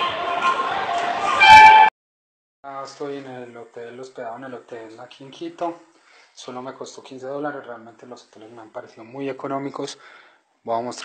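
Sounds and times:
busy bus terminal noise: 0.0 - 1.9
high-pitched squeal: 1.2 - 1.9.

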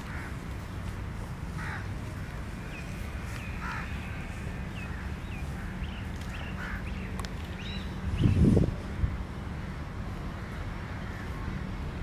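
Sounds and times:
crow cawing: 0.0 - 0.4, 1.5 - 2.6, 3.6 - 7.0.

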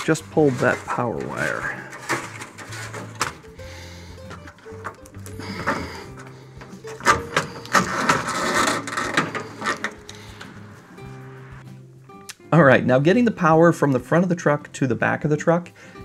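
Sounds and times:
fish tape clicking and scraping: 0.0 - 3.6, 4.2 - 10.2
plastic wire loom pulled through hole: 0.0 - 3.7, 4.3 - 10.5
background music: 0.0 - 16.0.

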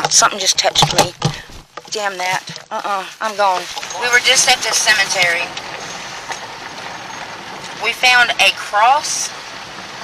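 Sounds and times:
woman speaking: 0.0 - 5.6, 7.8 - 9.3
car road and cabin noise: 0.0 - 10.0.

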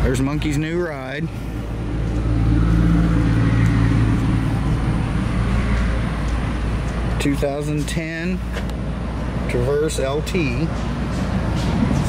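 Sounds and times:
vehicle engine humming: 0.0 - 12.0
low rumble: 0.3 - 7.2.

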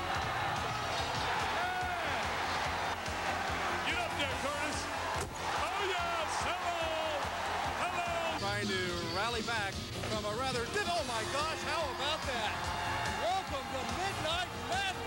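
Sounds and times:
crowd cheering: 0.0 - 8.5, 10.7 - 15.0.

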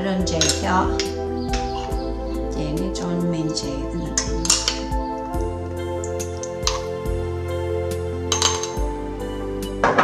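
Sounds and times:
background music: 0.0 - 10.0
metal spoon clinking on bowl: 0.2 - 2.0, 4.2 - 4.9, 8.3 - 8.8.

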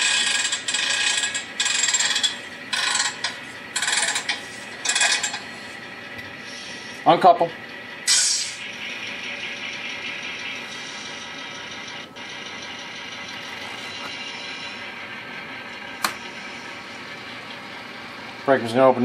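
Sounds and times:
model locomotive running: 0.0 - 19.0
short hiss: 8.1 - 8.6.

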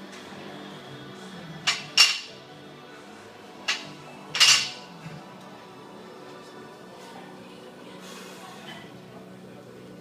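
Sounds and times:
barbell plates clinking: 4.4 - 4.8.

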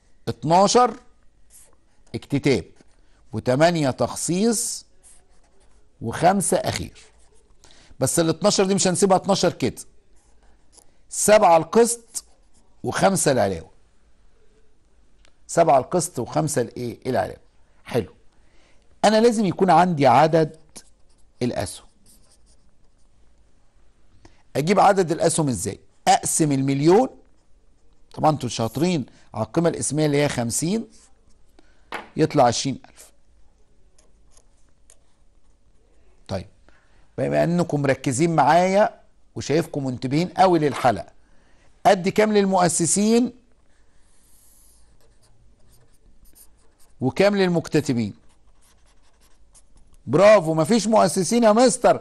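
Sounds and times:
marker pen scratching on whiteboard: 0.6 - 3.0, 3.6 - 7.5, 8.4 - 13.3, 19.2 - 23.2, 43.7 - 50.9.

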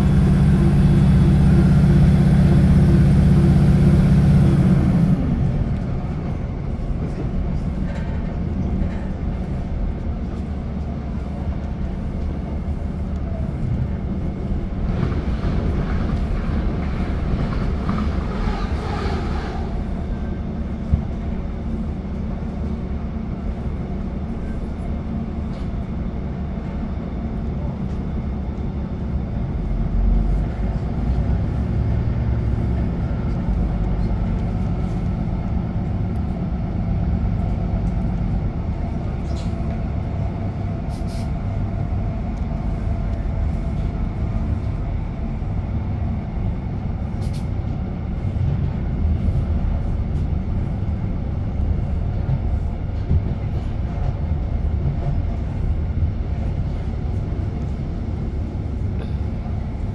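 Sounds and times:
train diesel engine rumble: 0.0 - 59.9
train wheels on rails: 0.0 - 59.9.

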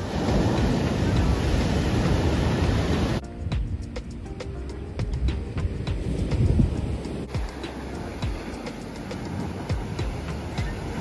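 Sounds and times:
waves breaking on beach: 0.0 - 3.2, 5.7 - 11.0
wind on microphone: 0.0 - 11.0
music with steady beat: 3.2 - 11.0.

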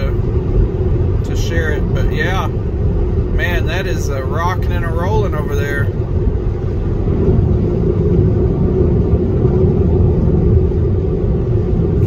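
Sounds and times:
road and tyre rumble in car: 0.0 - 12.0.

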